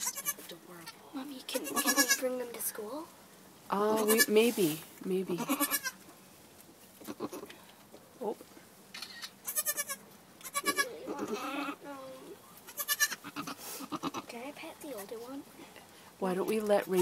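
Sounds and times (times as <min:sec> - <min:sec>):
goat kids bleating: 0:00.0 - 0:02.4, 0:03.9 - 0:04.4, 0:05.3 - 0:06.0, 0:07.0 - 0:07.5, 0:09.0 - 0:14.3.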